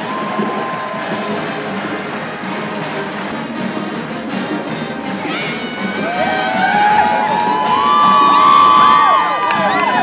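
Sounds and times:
crowd cheering: 0.0 - 10.0
young women cheering and screaming: 5.2 - 10.0.

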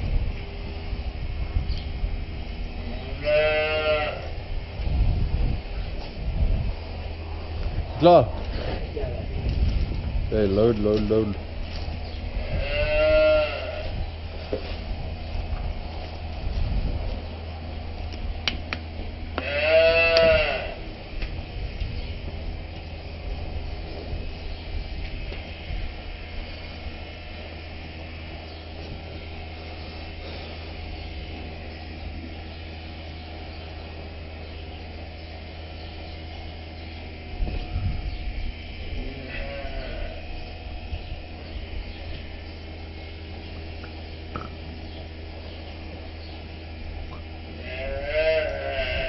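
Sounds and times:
steady low hum: 0.0 - 49.0
cow mooing: 3.1 - 4.3, 12.4 - 13.9, 19.4 - 20.8, 39.0 - 40.2, 47.6 - 49.0.

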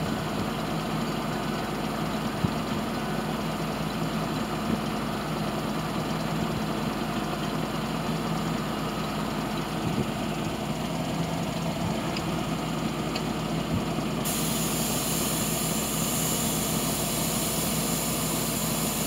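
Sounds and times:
truck engine idling: 0.0 - 19.0.

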